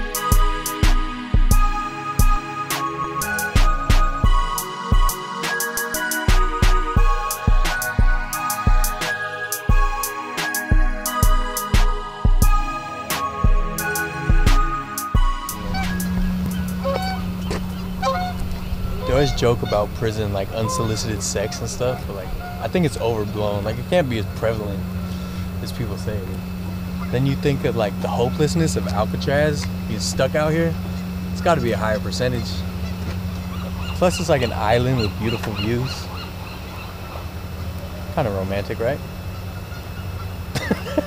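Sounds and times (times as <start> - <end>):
steady low hum: 0.0 - 41.0
bird calls: 15.5 - 40.6.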